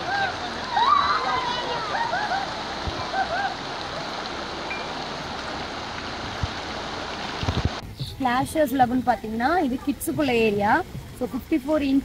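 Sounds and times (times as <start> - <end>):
water rushing into pool: 0.0 - 7.9.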